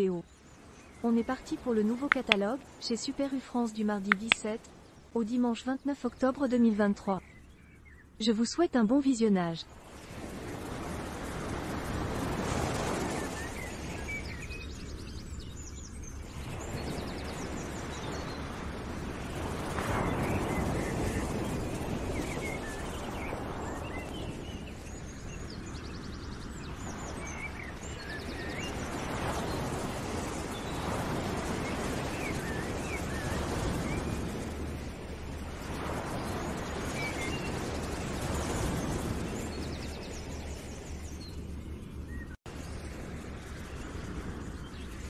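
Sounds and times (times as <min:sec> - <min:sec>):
small birds chirping: 0:00.0 - 0:10.0, 0:11.9 - 0:45.0.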